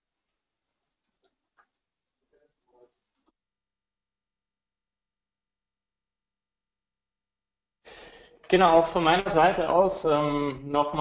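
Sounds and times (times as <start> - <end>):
man's breathy intake of breath: 7.8 - 8.4
man speaking: 8.5 - 11.0.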